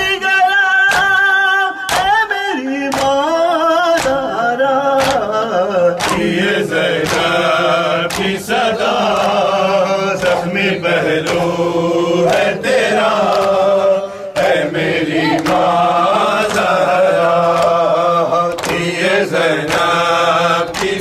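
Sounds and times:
men chanting a lament: 0.0 - 21.0
hands striking chests: 5.0 - 5.2, 6.0 - 7.4.

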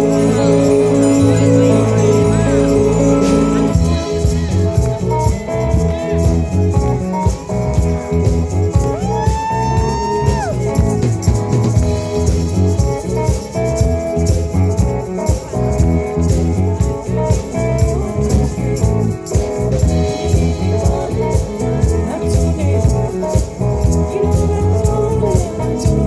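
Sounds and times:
bass guitar: 0.0 - 26.0
drum kit steady beat: 0.0 - 26.0
electric guitar: 0.0 - 26.0.

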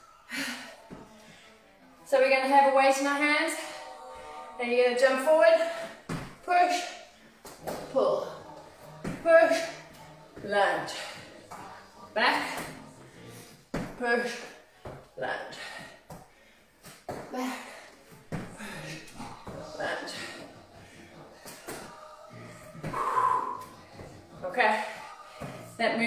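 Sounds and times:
woman breathing hard: 15.6 - 21.7, 22.7 - 24.0.

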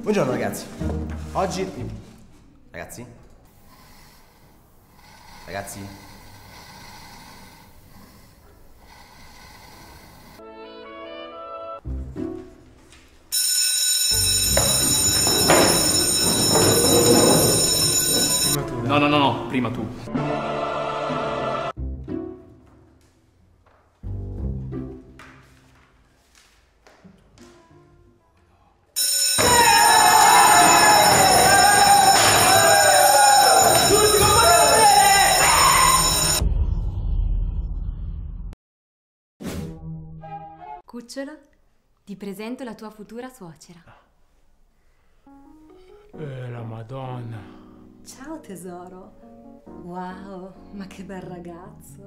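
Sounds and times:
electric school bell ringing: 13.3 - 18.6, 29.0 - 36.4
voices shouting: 29.4 - 36.1.

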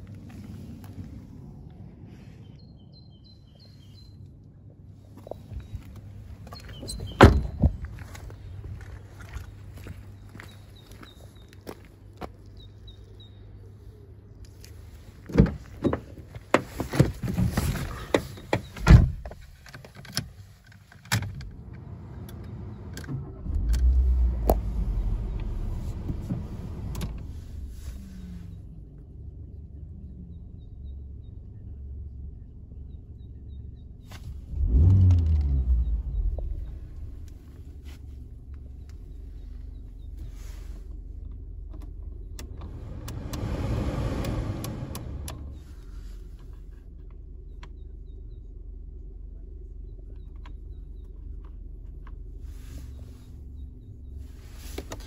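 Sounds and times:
car engine starting and idling: 14.5 - 55.0.

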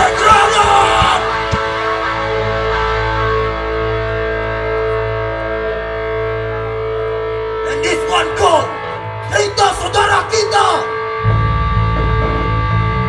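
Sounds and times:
distorted guitar and bass chord: 0.0 - 13.0
person's voice: 7.7 - 11.0.

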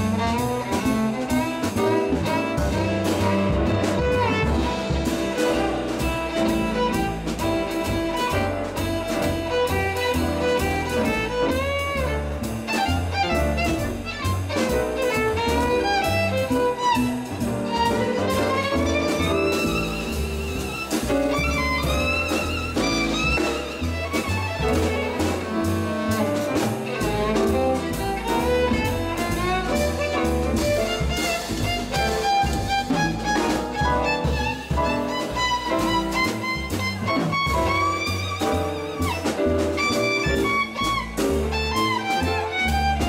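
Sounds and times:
drums with cymbals: 0.0 - 43.0
jazz violin solo: 0.0 - 43.0
plucked double bass: 0.0 - 43.0.

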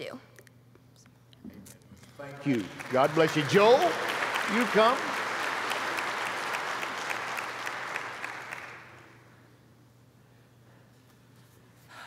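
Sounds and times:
congregation applauding: 2.2 - 9.4.

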